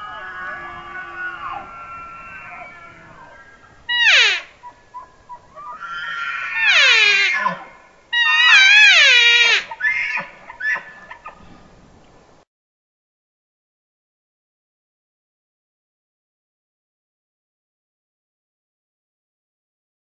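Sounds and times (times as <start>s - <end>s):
elk bugling: 0.0s - 11.7s.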